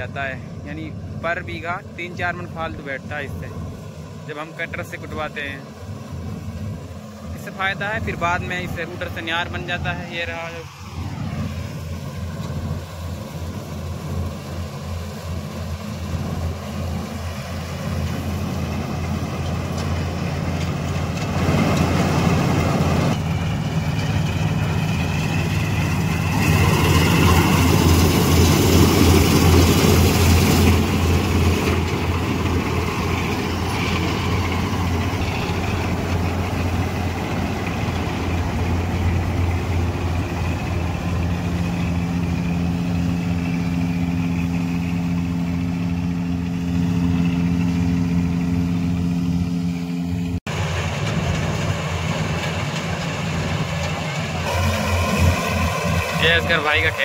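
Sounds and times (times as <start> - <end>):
combine harvester engine drone: 0.0 - 57.0
threshing noise: 5.4 - 49.1, 50.5 - 57.0.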